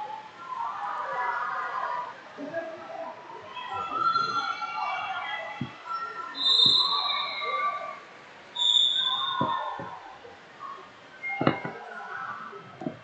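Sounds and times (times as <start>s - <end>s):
distant chatter: 0.0s - 13.0s
short whistle blasts: 6.4s - 7.9s, 8.6s - 9.9s.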